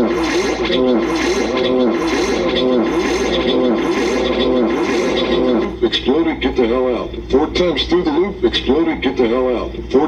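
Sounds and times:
low hum: 0.0 - 8.8
processed warbling voice: 0.0 - 10.0.

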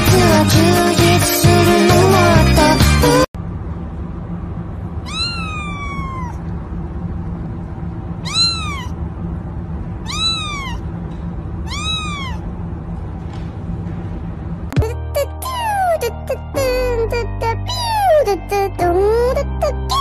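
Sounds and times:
kitten meowing: 5.0 - 6.5, 8.2 - 9.0, 10.0 - 10.8, 11.6 - 12.5.

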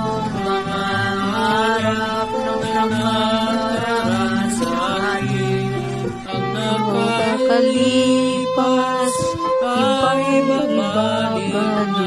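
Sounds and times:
instrumental accompaniment: 0.0 - 12.0
young voice singing pop song: 0.0 - 12.0.

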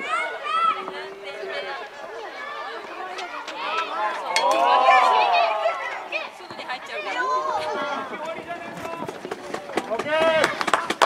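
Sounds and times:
voices calling and shouting: 0.0 - 11.0.

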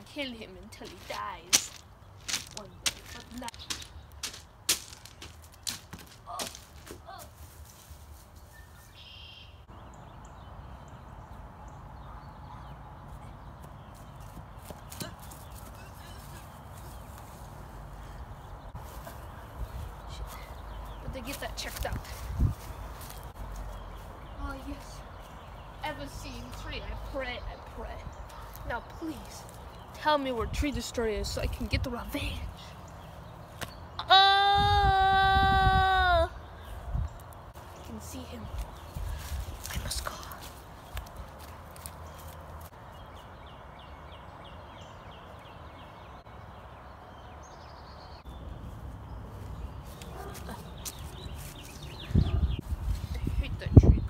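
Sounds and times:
footsteps on grass: 0.6 - 9.3, 13.6 - 26.8, 37.5 - 42.8, 48.2 - 53.6
wind rumble on microphone: 18.3 - 23.4, 34.2 - 37.4, 51.1 - 54.0.

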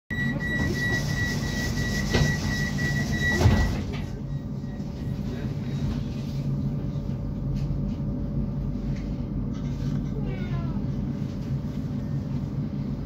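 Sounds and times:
tram door warning beep: 0.1 - 5.9
low tram hum: 0.1 - 13.0.

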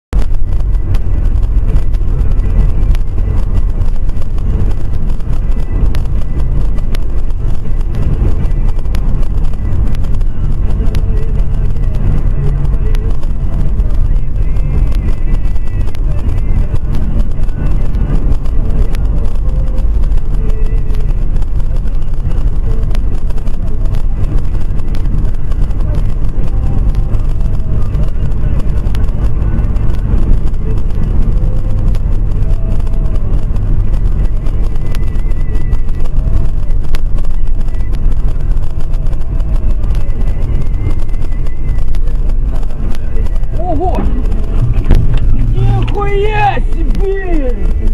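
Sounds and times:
car engine and road rumble: 0.0 - 47.9.

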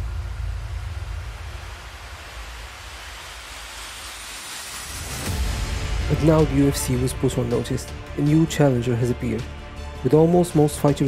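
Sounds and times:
deep bass rumble: 0.0 - 3.9, 4.9 - 11.0
hissing whoosh: 0.0 - 8.2.

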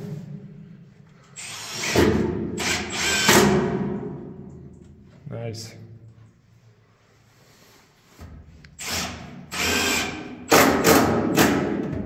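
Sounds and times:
cordless drill driving into wood: 1.4 - 3.6, 8.8 - 11.4.

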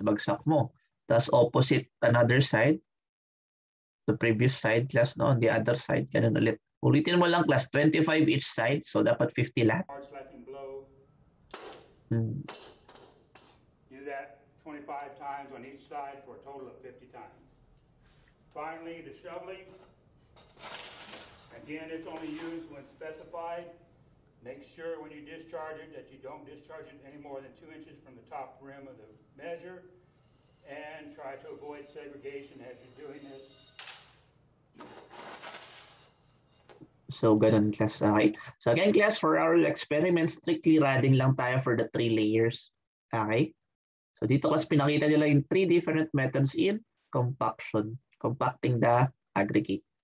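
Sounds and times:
person speaking: 12.1 - 12.5, 21.5 - 30.0, 30.6 - 33.5, 37.1 - 42.6
metal scoop digging gravel: 20.4 - 23.3, 34.8 - 36.8
rattle of stones: 34.8 - 36.7.

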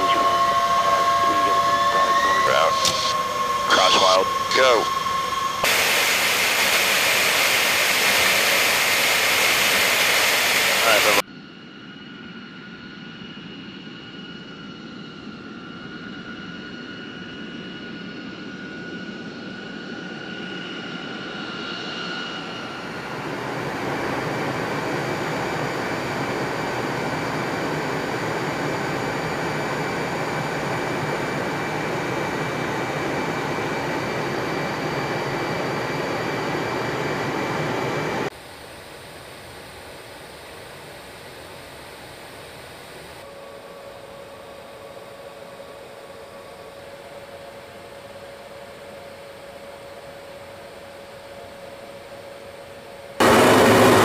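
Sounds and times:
loud steady jet engine noise: 0.0 - 54.0
turbine whine with high tones: 0.0 - 54.0.

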